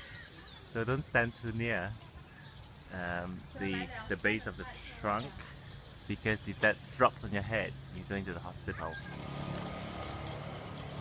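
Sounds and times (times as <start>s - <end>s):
motor humming: 9.0s - 11.0s.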